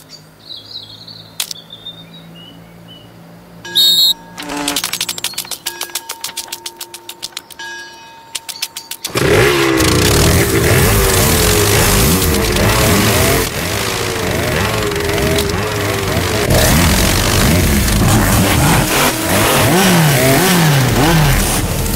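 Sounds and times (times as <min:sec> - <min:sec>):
cartoon engine sound effects: 0:03.7 - 0:05.7.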